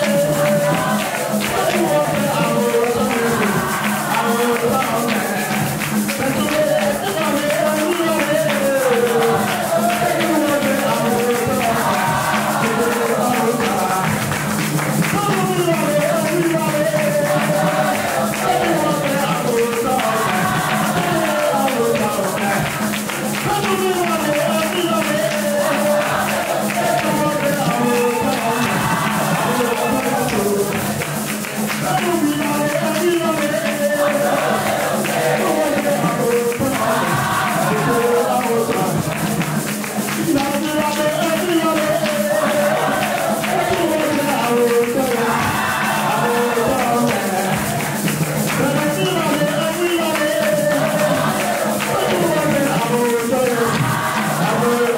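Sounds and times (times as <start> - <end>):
congregation singing: 0.0 - 54.9
hand clapping: 0.0 - 54.9
percussion beat: 0.0 - 54.9
person singing into microphone: 0.0 - 54.9.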